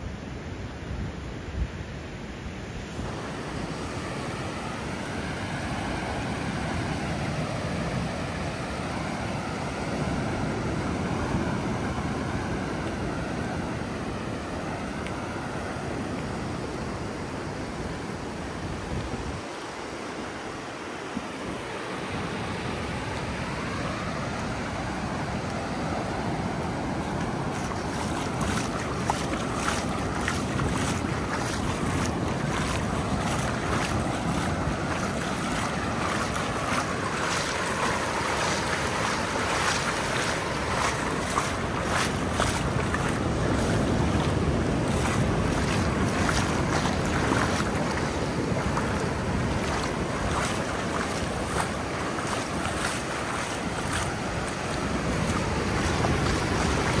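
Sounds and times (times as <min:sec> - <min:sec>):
ocean surf rushing: 0:02.8 - 0:57.0
wind buffeting microphone: 0:22.2 - 0:57.0.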